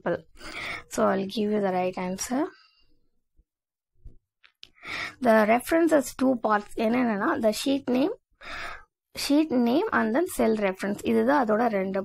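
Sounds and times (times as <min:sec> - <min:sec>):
person drawing breath: 0:00.4 - 0:00.9, 0:04.8 - 0:05.2, 0:08.4 - 0:08.9.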